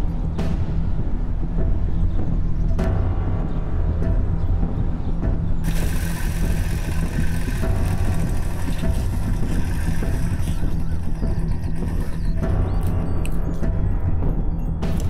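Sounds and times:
background music: 0:00.0 - 0:15.0
motorcycle engine running: 0:05.6 - 0:12.6.

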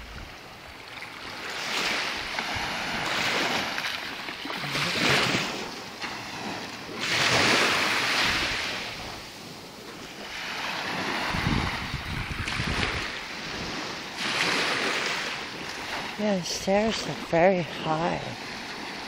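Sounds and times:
wind rumbling on microphone: 0:00.0 - 0:00.8, 0:01.9 - 0:19.0
small waves washing ashore: 0:00.0 - 0:19.0.

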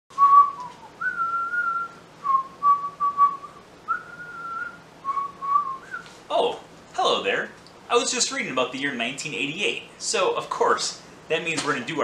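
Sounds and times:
man whistling a tune: 0:00.1 - 0:06.1.

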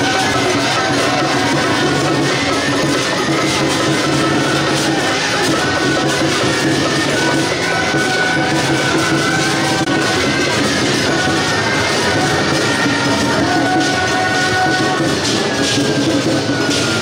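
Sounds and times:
drums gongs and cymbals: 0:00.0 - 0:17.0
high wind instrument notes: 0:00.0 - 0:17.0.

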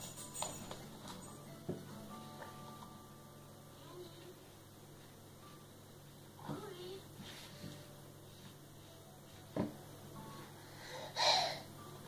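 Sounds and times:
toddler breathing: 0:10.5 - 0:11.7.

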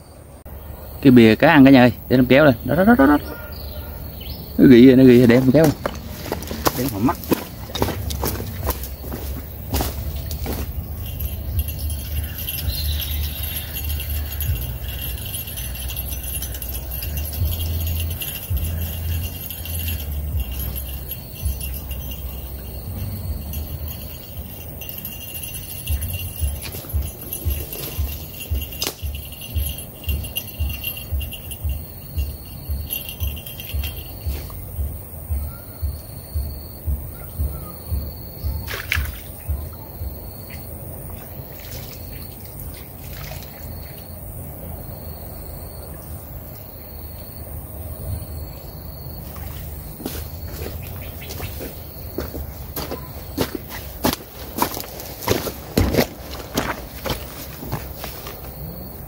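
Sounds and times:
small bell jingling: 0:01.4 - 0:38.6, 0:43.6 - 0:59.0.

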